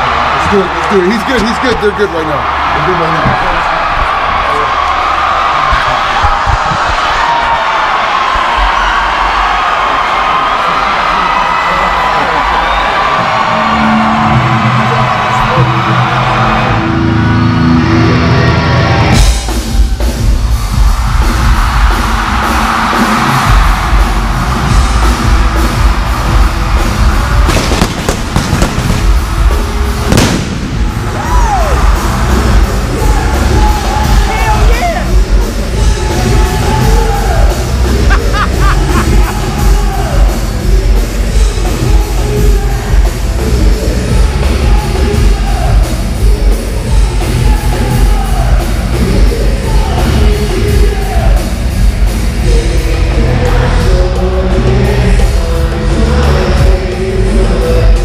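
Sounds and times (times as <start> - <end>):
crowd cheering and yelling: 0.0 - 58.0
loud live rock music: 13.0 - 58.0
sharp bangs: 27.4 - 31.1.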